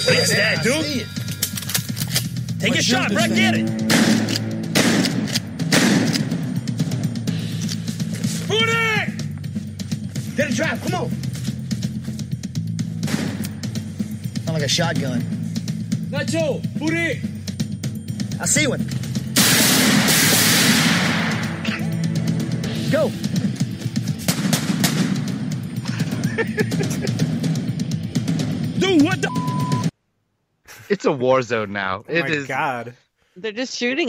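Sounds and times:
low droning background music: 0.0s - 29.9s
gunfire blast: 3.8s - 6.5s, 13.0s - 13.5s, 19.4s - 21.6s, 24.3s - 25.5s
gunshots: 3.8s - 6.6s, 13.0s - 13.6s, 19.4s - 21.6s, 24.2s - 25.6s.

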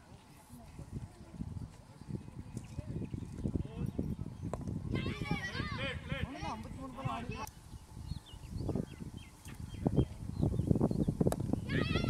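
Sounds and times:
young players calling out: 4.9s - 6.6s.

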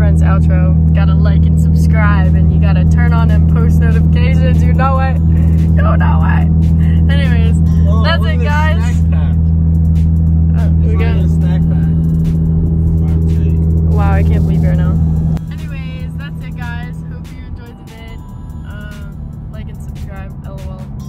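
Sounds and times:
car engine drone: 0.0s - 21.0s
road noise inside car: 0.0s - 21.0s.

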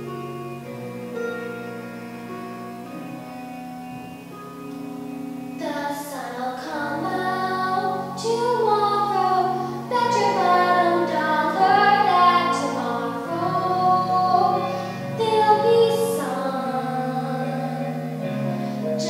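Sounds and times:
low sustained accompaniment chords: 0.0s - 19.0s
girl singing: 5.6s - 19.0s.

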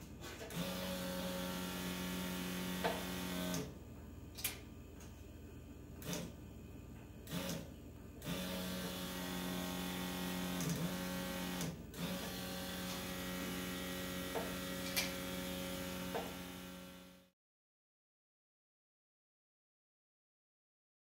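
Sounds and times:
electric fuel pump whirring: 0.0s - 3.8s, 6.0s - 6.4s, 7.2s - 17.3s.

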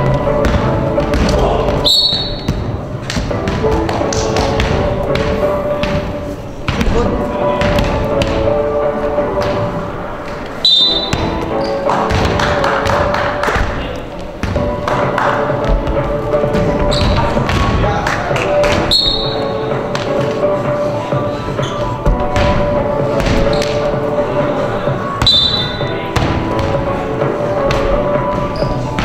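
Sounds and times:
basketball bouncing on floor: 0.0s - 7.0s, 7.6s - 8.6s, 10.9s - 13.8s, 14.4s - 14.8s, 22.0s - 23.8s
loud background music: 0.0s - 29.0s
shoe squeaks: 1.8s - 2.6s, 10.6s - 11.9s, 16.8s - 17.4s, 18.8s - 19.6s, 21.5s - 22.1s, 23.4s - 23.9s, 25.2s - 26.0s, 28.4s - 29.0s.

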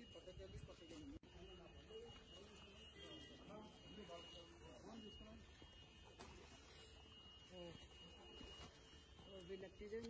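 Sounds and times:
faint voices of people talking: 0.0s - 10.0s
thin steady high tone: 0.0s - 10.0s.

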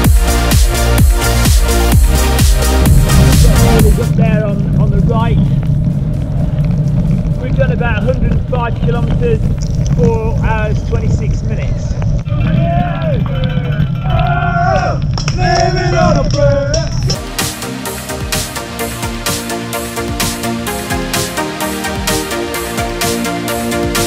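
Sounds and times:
wind buffeting microphone: 2.6s - 17.2s
people shouting and cheering: 12.3s - 17.0s.

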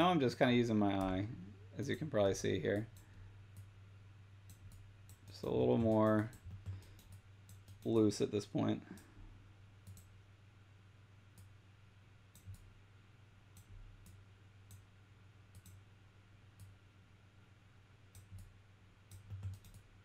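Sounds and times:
low steady hum: 0.0s - 20.0s
computer mouse clicks: 4.4s - 8.0s, 9.8s - 10.1s, 12.3s - 12.7s, 13.5s - 14.9s, 15.5s - 15.8s, 18.1s - 18.5s, 19.1s - 19.9s.

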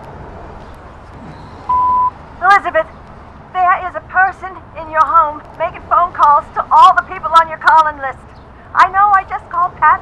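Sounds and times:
answering machine beep: 1.7s - 2.2s.

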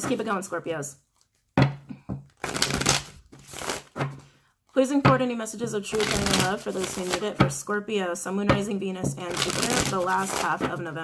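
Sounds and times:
cards being shuffled: 2.3s - 4.2s, 5.9s - 7.5s, 9.3s - 10.8s.

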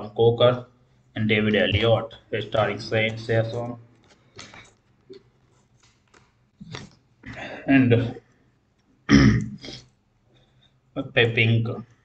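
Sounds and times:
man clearing his throat: 9.1s - 9.8s.

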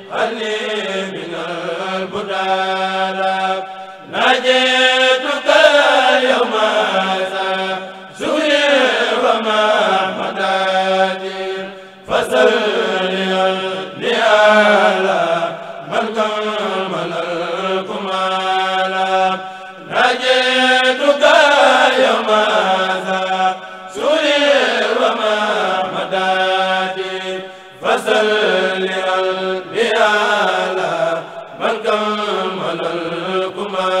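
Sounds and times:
men chanting in unison: 0.0s - 34.0s.

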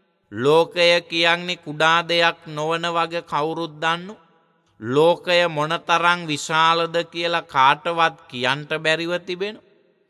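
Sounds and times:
man chanting: 0.3s - 9.6s.

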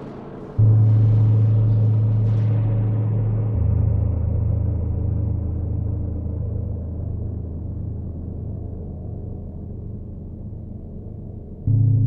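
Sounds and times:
low processed gong drone: 0.0s - 10.8s.

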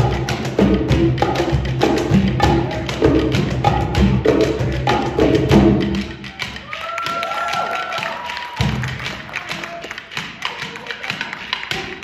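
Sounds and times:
hand drums tapping rapidly: 0.0s - 12.0s.

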